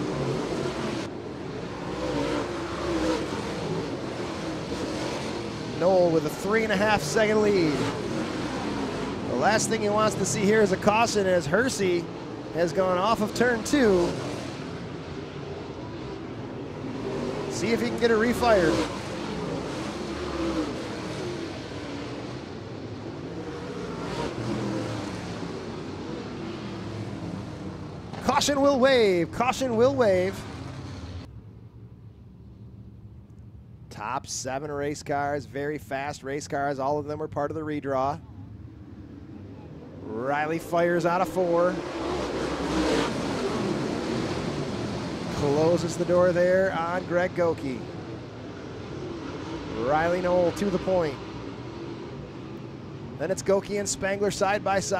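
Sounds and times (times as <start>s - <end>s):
race car engines droning: 0.0s - 54.9s.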